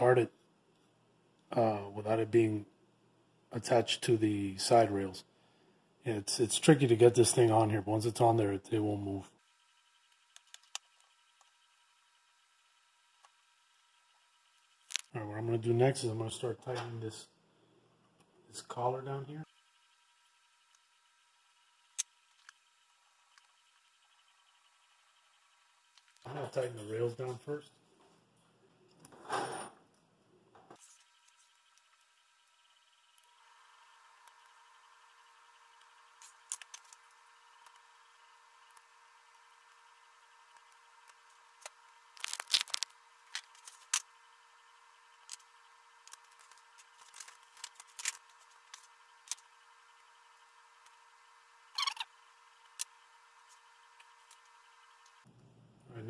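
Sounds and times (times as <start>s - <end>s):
faint high-pitched hum: 0.0s - 56.0s.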